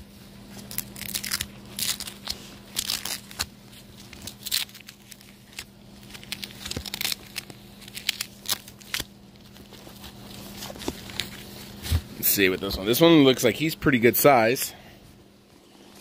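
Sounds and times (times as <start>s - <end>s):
packing rustling and crinkling: 0.5s - 13.0s.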